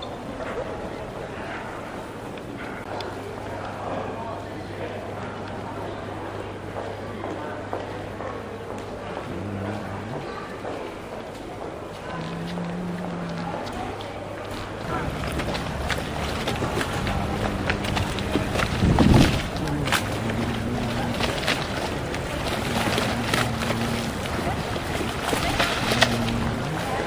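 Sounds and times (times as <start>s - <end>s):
wind buffeting microphone: 15.1s - 26.8s.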